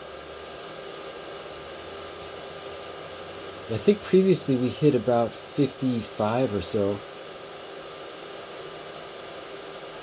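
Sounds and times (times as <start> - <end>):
small cooling fan hissing: 0.0 - 10.0.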